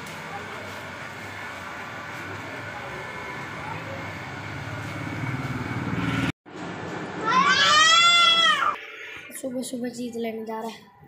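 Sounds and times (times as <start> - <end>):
vehicle engine rumbling: 0.0 - 7.0.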